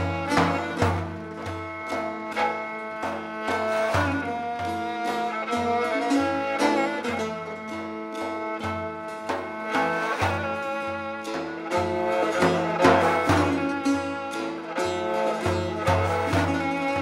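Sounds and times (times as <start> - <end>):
bowed string melody: 0.0 - 17.0
frame drum strokes: 0.0 - 17.0
plucked lute: 0.0 - 17.0.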